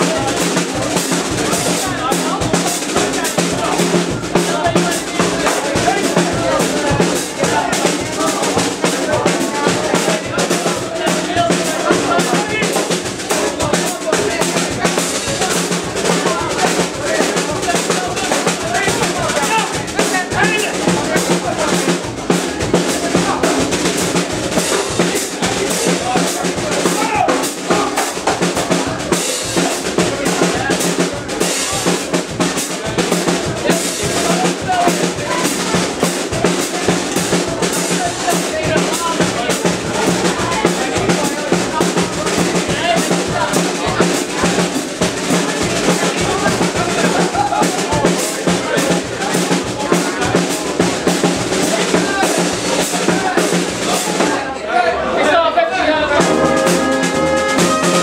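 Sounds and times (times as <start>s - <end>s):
marching beat on snare and bass drum: 0.0s - 54.5s, 56.1s - 58.0s.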